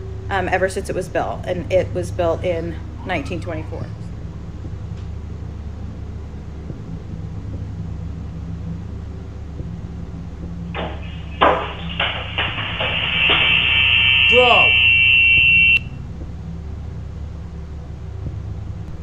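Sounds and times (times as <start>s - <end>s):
steady high-pitched tone: 10.7s - 16.2s.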